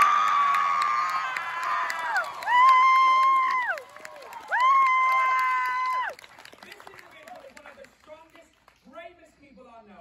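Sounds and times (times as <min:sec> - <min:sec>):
crowd cheering: 0:00.0 - 0:07.8.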